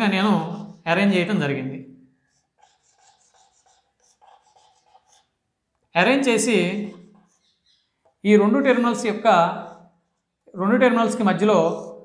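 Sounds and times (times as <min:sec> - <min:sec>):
marker drawing on whiteboard: 0:00.0 - 0:01.4, 0:02.2 - 0:10.5.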